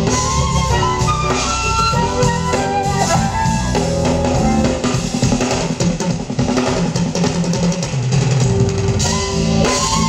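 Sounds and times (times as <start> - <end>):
jazz band playing: 0.0 - 10.0.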